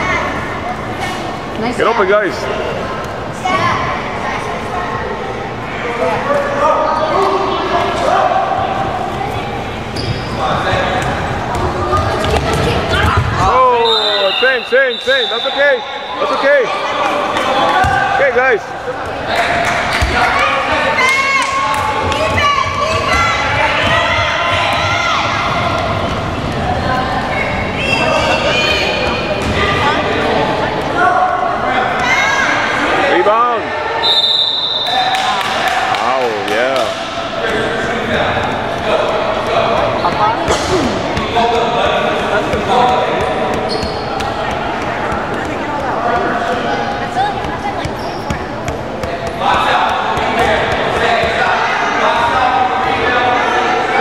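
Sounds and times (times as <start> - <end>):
echoing chatter: 0.0 - 54.0.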